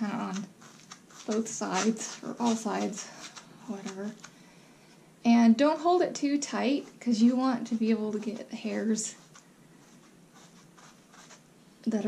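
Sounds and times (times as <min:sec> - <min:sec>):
wire brush raking through hair: 0:00.0 - 0:04.3, 0:06.8 - 0:11.4.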